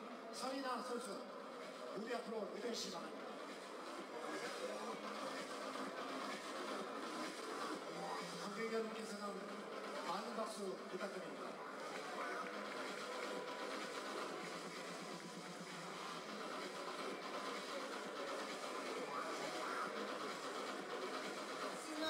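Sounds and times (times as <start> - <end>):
indistinct crowd voices: 0.0 - 22.0.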